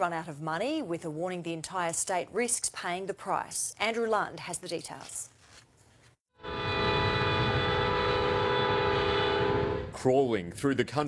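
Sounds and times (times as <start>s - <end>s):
train horn blast: 6.4s - 10.0s
low rumble of moving train: 6.4s - 10.1s.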